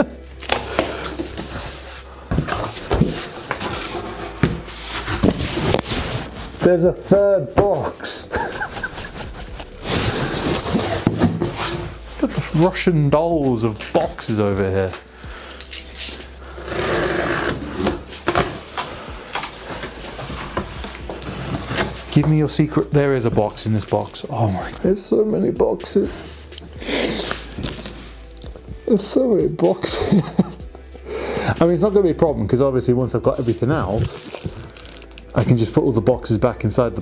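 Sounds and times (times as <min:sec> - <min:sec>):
cardboard scraping and rustling: 0:00.5 - 0:07.2, 0:08.4 - 0:12.7, 0:15.9 - 0:24.6.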